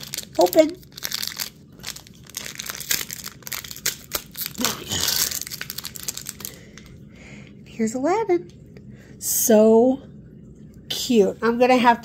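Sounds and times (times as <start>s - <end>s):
plastic bag crinkling: 0.0s - 7.0s.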